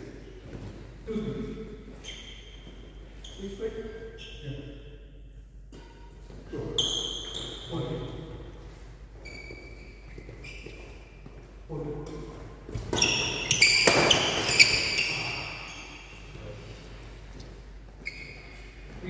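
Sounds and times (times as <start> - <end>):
shoes squeaking on wooden floor: 1.9 - 3.6, 6.2 - 11.5, 12.6 - 16.4, 17.2 - 19.0.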